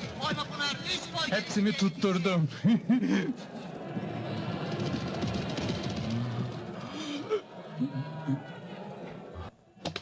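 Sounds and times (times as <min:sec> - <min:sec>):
crowd shouting: 0:03.3 - 0:09.9.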